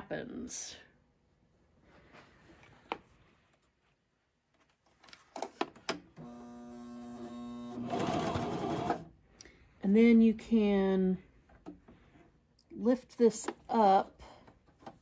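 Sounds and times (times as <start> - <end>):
sewing machine motor running: 6.2 - 9.1.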